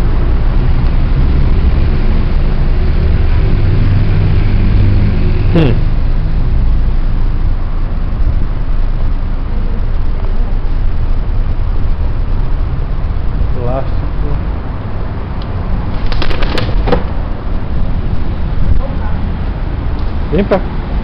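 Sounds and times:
wind buffeting microphone: 6.9 - 21.0.

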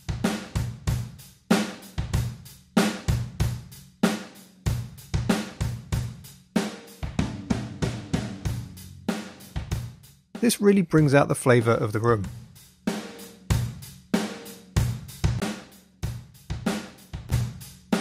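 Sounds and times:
drum kit beat: 0.0 - 18.0.

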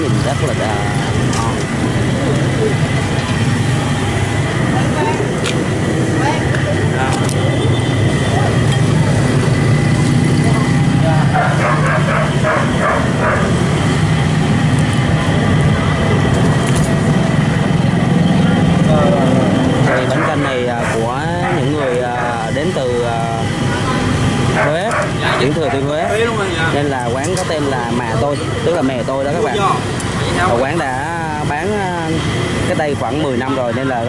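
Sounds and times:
indistinct voices chattering: 0.0 - 34.0
traffic rumble: 0.0 - 34.0.

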